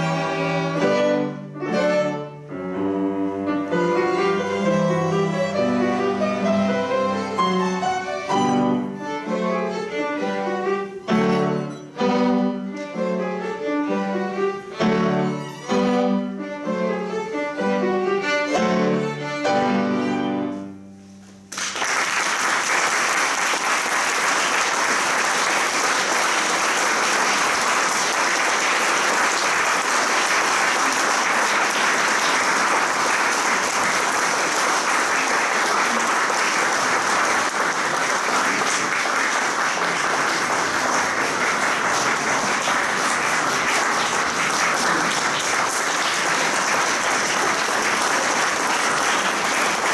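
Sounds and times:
audience applauding: 0:21.5 - 0:49.9.

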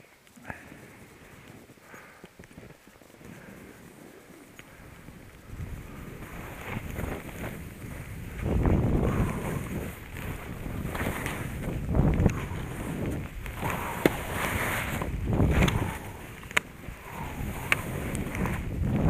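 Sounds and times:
skis scraping through snow: 0:00.7 - 0:19.0
wind buffeting microphone: 0:03.3 - 0:19.0.

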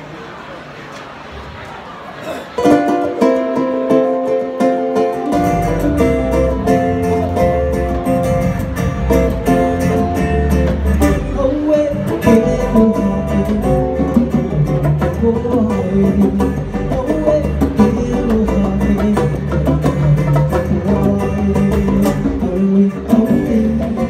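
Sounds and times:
acoustic guitar strummed: 0:02.2 - 0:24.0
ukulele strummed: 0:02.6 - 0:24.0
hand percussion: 0:02.7 - 0:24.0
low bass notes: 0:05.2 - 0:24.0.

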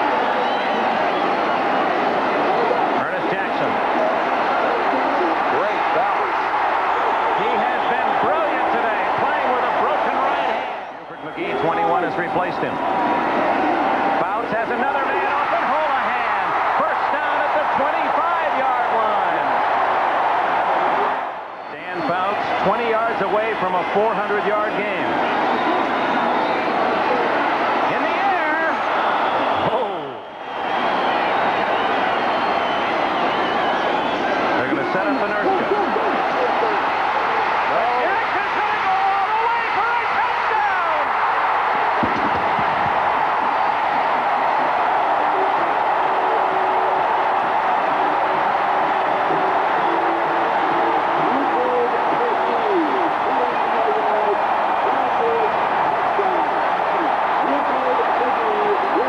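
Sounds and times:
stadium crowd cheering and yelling: 0:00.0 - 0:59.0.

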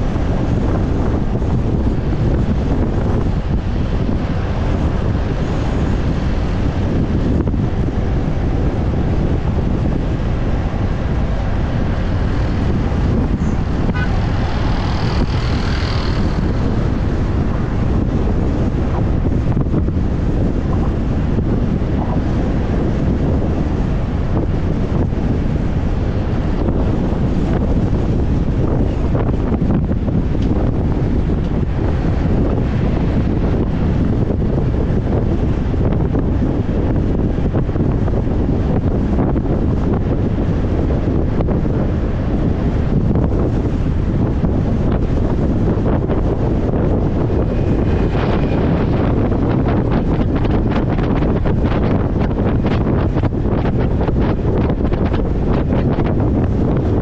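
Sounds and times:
motorcycle running: 0:00.0 - 0:57.0
road noise: 0:00.0 - 0:57.0
wind buffeting microphone: 0:00.0 - 0:57.0.

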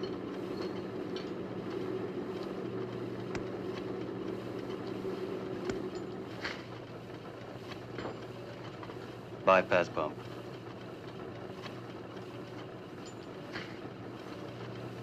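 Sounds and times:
pump mechanical hum: 0:00.0 - 0:15.0.

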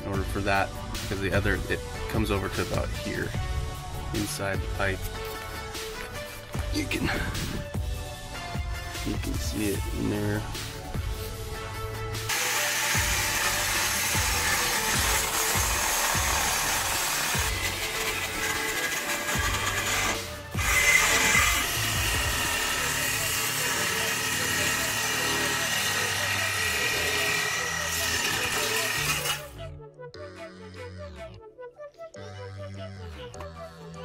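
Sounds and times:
power saw cutting steel pipe: 0:12.3 - 0:29.6.

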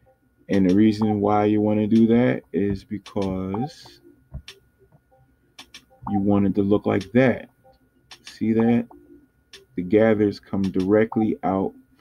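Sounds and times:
computer mouse clicks: 0:05.6 - 0:06.0.

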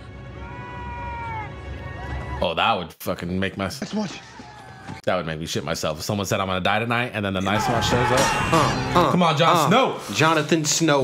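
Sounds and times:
low rumbling score music: 0:00.0 - 0:02.4.

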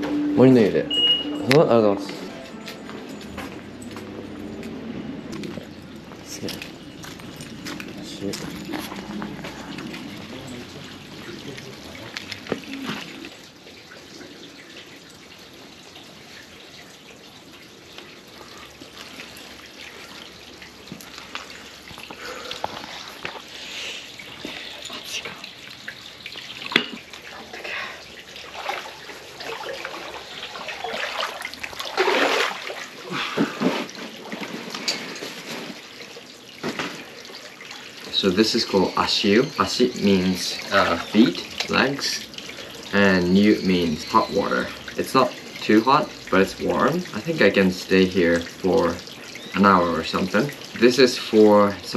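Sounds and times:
water running into stone basin: 0:00.0 - 0:51.9
feet splashing in water: 0:28.3 - 0:35.8.

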